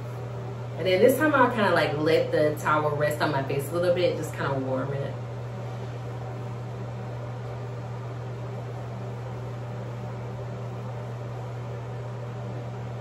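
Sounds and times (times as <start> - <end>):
fan humming and hissing: 0.0 - 13.0.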